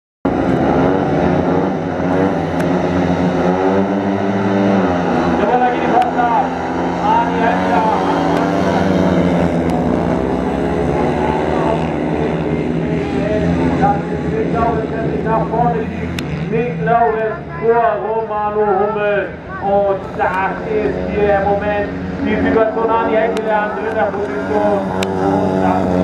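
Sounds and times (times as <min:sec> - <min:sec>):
motorcycle engines revving: 0:00.3 - 0:26.0
motorcycles racing away: 0:00.3 - 0:26.0.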